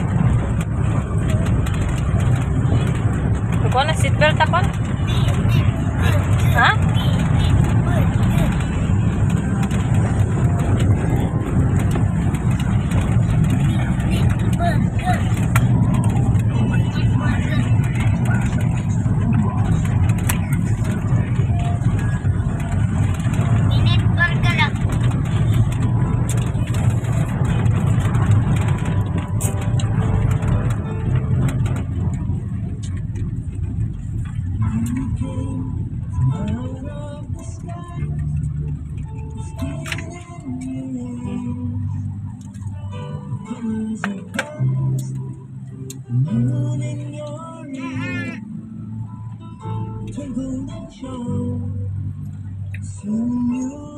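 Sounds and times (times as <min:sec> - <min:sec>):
vehicle road and engine rumble: 0:00.0 - 0:53.9.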